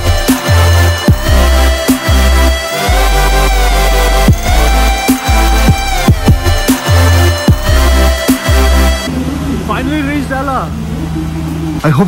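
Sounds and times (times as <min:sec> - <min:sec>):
diesel train idling: 0:00.0 - 0:12.0.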